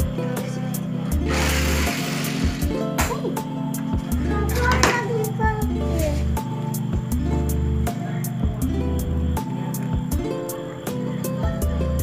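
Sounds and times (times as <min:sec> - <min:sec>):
background music with beat: 0:00.0 - 0:12.0.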